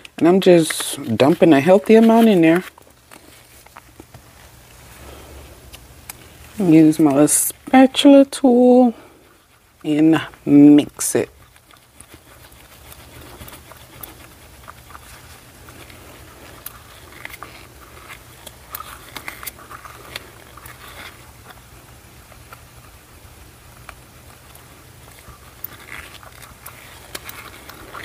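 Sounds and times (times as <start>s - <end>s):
spatula scraping plastic cup: 0.0s - 3.8s
low steady hum: 0.0s - 28.0s.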